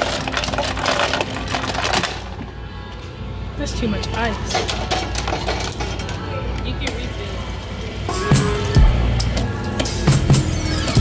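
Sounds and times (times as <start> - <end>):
ice cubes clattering into cup: 0.0 - 2.4.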